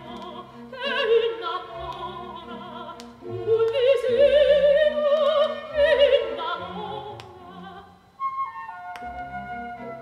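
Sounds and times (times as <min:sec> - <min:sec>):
opera singer: 0:00.0 - 0:10.0.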